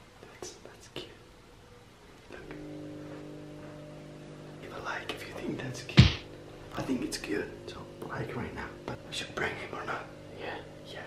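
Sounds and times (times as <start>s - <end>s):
low hum of held tones: 0.0s - 11.0s
person whispering: 0.2s - 1.2s, 4.6s - 5.8s, 9.1s - 11.0s.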